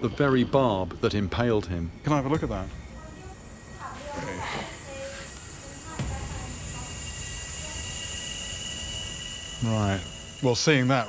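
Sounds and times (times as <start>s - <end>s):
thin high whine: 0.0s - 11.0s
hiss: 3.0s - 11.0s.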